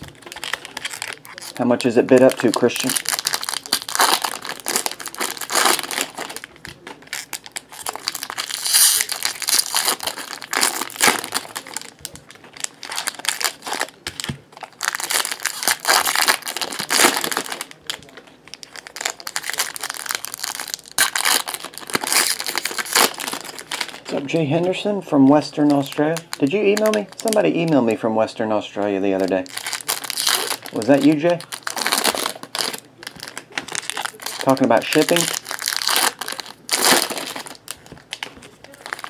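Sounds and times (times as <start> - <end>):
foil wrappers crinkling: 0.0 - 39.0.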